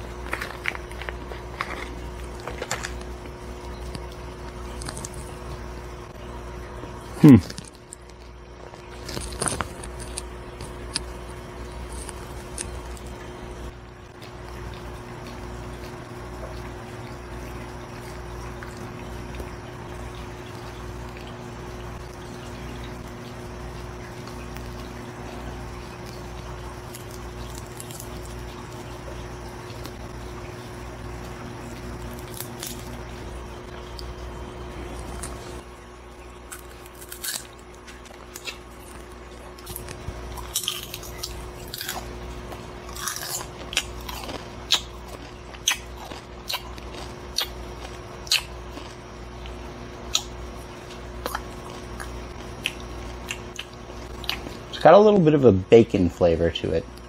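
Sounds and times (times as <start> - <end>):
crunching and chewing: 0.0 - 5.8, 6.6 - 54.8
steady electrical hum: 0.0 - 57.0.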